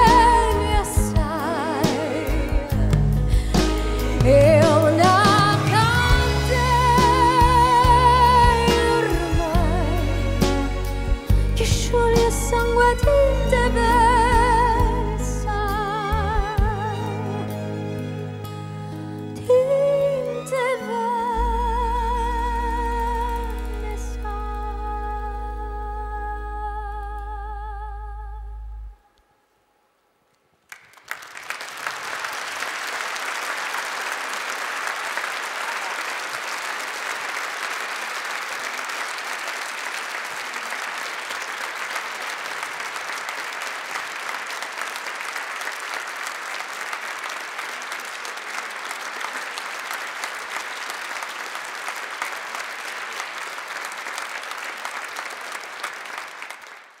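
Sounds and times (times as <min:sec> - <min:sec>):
audience applause: 0:30.7 - 0:57.0.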